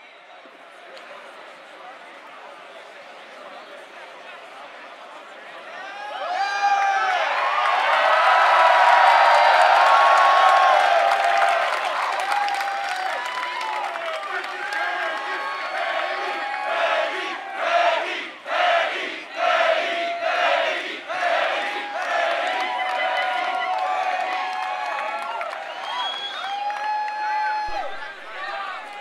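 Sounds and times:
crowd cheering and screaming: 0:05.8 - 0:17.6, 0:21.6 - 0:29.0
crowd shouting rhythmically: 0:14.2 - 0:24.1.

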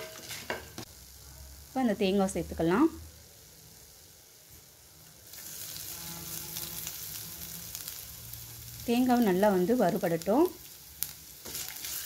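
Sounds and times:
spices sizzling in oil: 0:00.0 - 0:12.0.

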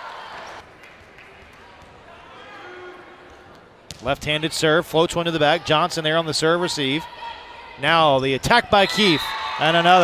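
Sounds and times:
faint voices in gym hall: 0:00.0 - 0:10.0.

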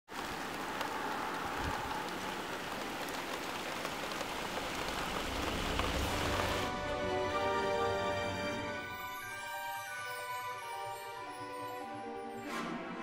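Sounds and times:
raindrop ticks: 0:00.1 - 0:06.7
steady rain hiss: 0:00.1 - 0:11.2.

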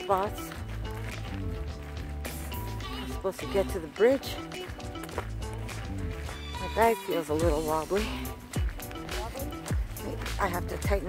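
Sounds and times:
background music low sustained notes: 0:00.0 - 0:11.0.

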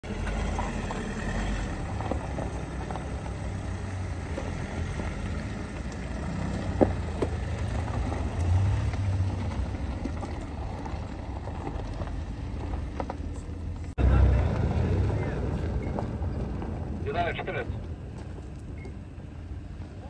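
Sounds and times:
cars driving on gravel: 0:00.0 - 0:20.0.

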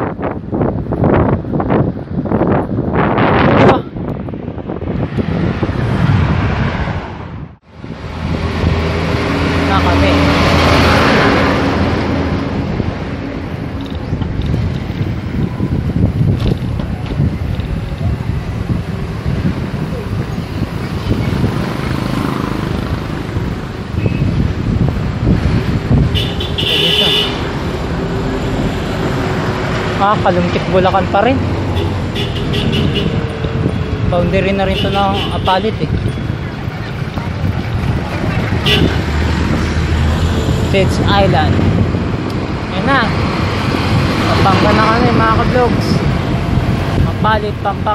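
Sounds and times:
cars passing: 0:00.0 - 0:47.9
wind on microphone: 0:00.0 - 0:47.9.

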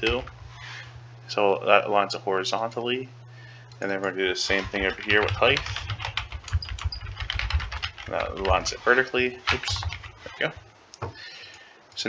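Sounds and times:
typing on computer keyboard: 0:04.5 - 0:08.8, 0:09.5 - 0:10.2.

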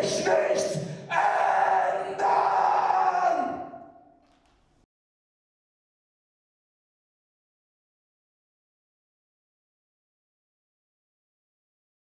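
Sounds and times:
man yelling into a microphone: 0:00.0 - 0:04.0.

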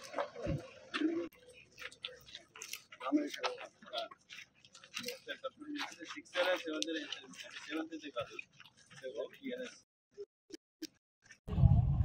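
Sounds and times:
footsteps on dirt: 0:00.0 - 0:09.8.

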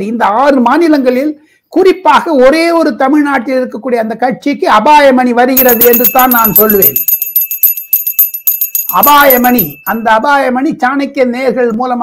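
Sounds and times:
hand bell ringing rapidly: 0:05.6 - 0:10.2.

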